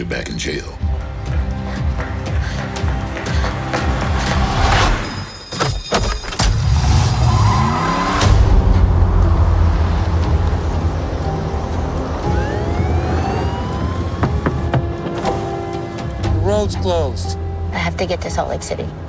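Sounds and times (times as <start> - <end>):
rising tones: 6.2 - 16.9.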